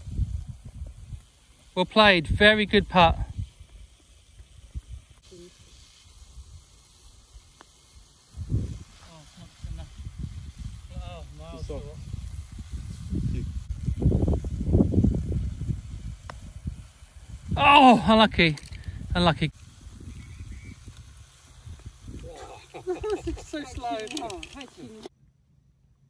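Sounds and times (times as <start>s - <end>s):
wind buffeting microphone: 0.0s - 1.3s, 8.3s - 25.1s.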